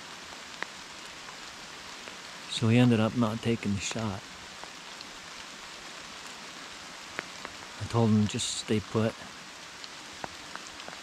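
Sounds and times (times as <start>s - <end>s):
steady rain falling: 0.0s - 11.0s.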